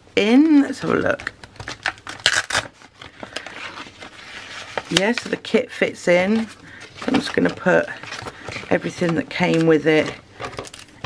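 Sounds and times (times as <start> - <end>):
paper rustling against plastic: 0.8 - 11.0.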